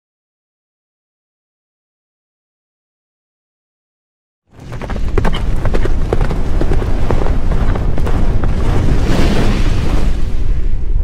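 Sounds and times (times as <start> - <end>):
deep rumble: 4.6 - 11.0.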